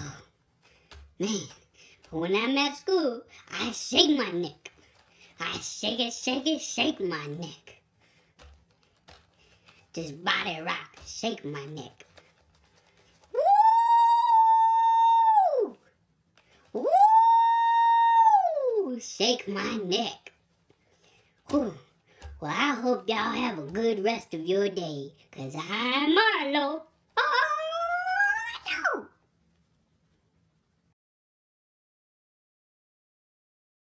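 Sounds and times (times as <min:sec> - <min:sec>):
person falsetto woo: 0:13.3 - 0:15.9, 0:16.8 - 0:19.0
high-pitched howl-like vocal call: 0:13.4 - 0:15.8, 0:16.8 - 0:18.9.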